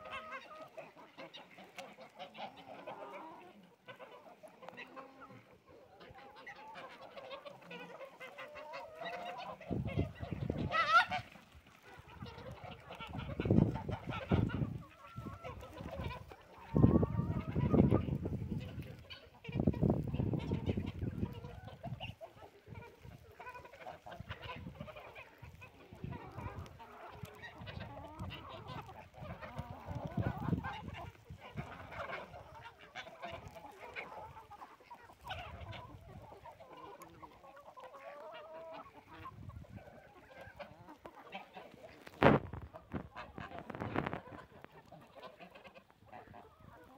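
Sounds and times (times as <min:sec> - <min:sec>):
chickens clucking: 0:00.0 - 0:46.9.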